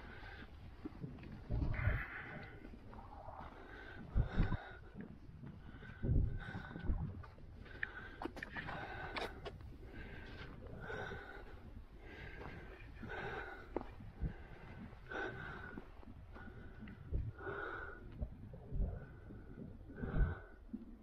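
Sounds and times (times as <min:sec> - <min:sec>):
heavy rhythmic breathing: 0:00.0 - 0:21.0.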